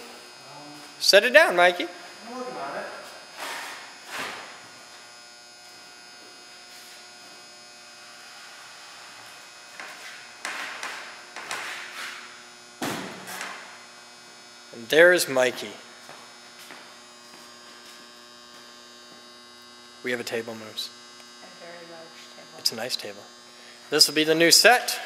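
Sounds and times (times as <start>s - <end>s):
electrical hum: 0.0s - 25.0s.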